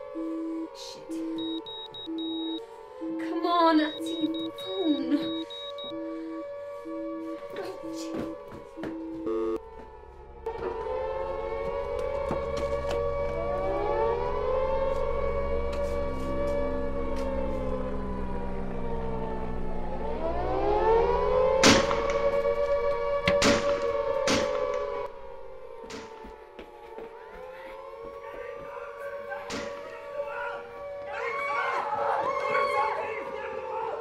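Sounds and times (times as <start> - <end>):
air-raid siren wailing: 0.0 - 34.0
short beeping tones: 1.4 - 2.6, 3.8 - 6.0.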